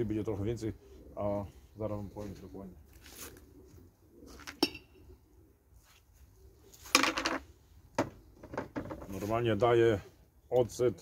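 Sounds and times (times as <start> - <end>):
pigeons cooing: 0.0 - 10.4.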